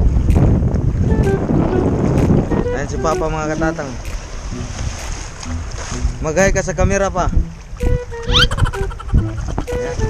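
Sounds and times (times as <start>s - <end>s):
wind rumbling on microphone: 0.0s - 10.0s
background music melody: 1.0s - 10.0s.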